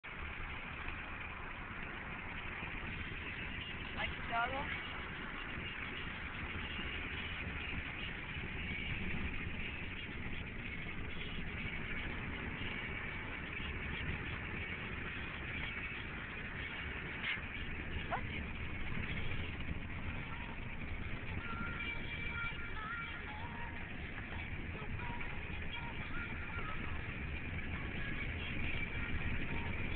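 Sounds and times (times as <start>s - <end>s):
car engine and road noise: 0.0s - 29.9s.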